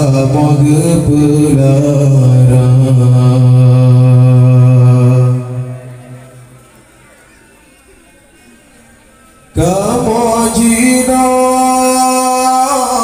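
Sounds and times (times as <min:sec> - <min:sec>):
man chanting through loudspeakers: 0:00.0 - 0:06.6, 0:09.5 - 0:13.0.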